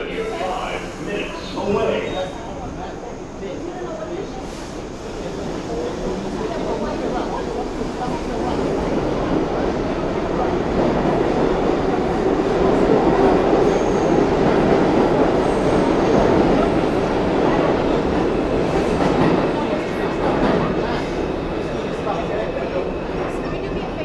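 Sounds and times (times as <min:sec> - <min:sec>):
subway train rumbling on rails: 0:00.0 - 0:24.0.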